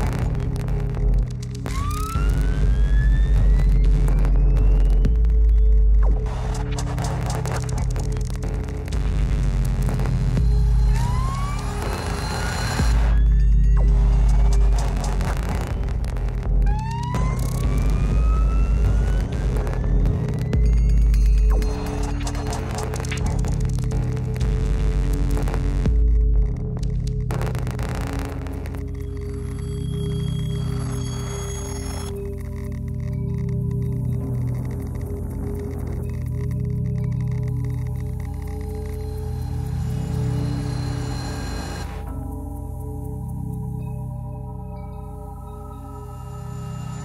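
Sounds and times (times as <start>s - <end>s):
rapid stuttering electronic texture: 0.0s - 43.2s
bass flutter: 0.0s - 47.0s
deep electronic drone: 0.0s - 47.0s.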